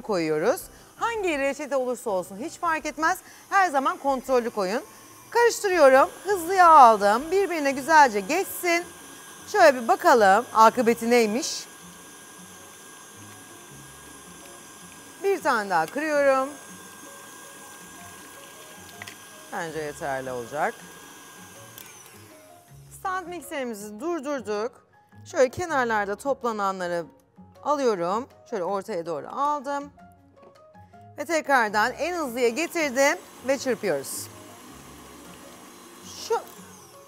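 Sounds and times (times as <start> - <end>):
stand mixer motor running: 0.1 - 23.0, 32.0 - 37.0.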